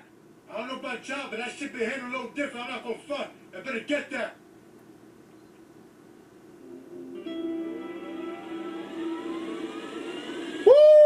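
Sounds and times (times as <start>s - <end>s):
droning hum: 4.4s - 11.0s
rising whine: 6.6s - 11.0s.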